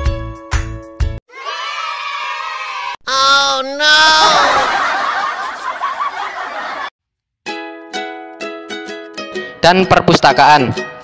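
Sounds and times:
students laughing: 4.1 - 6.9.

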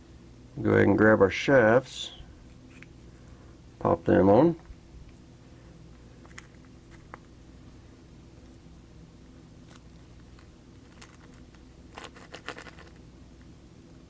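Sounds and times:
low steady hum: 0.0 - 14.0.

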